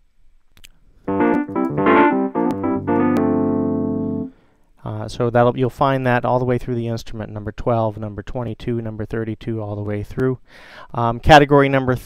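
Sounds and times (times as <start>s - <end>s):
distorted electric piano: 1.1s - 4.3s.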